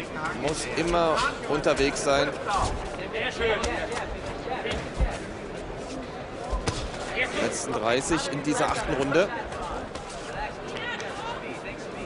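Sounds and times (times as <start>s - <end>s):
voices around a ring: 0.0s - 12.0s.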